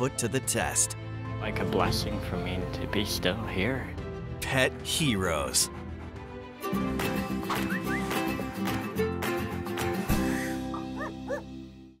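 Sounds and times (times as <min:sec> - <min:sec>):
dog yips: 0:10.3 - 0:11.5.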